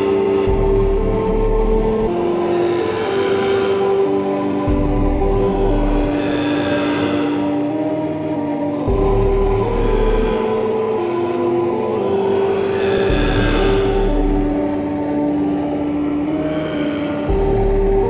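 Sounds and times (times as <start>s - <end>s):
dark ambient synth music: 0.0s - 18.0s.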